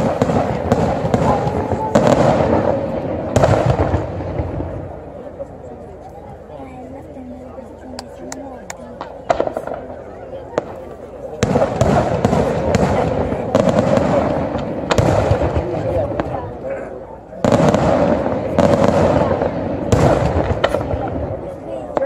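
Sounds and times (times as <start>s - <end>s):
fireworks bursting and crackling: 0.0s - 5.5s, 8.3s - 22.0s.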